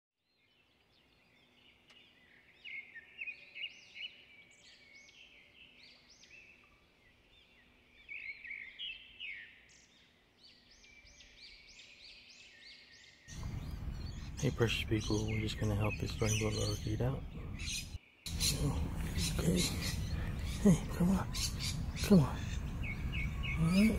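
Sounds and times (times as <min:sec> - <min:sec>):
birds chirping: 0:00.3 - 0:23.9.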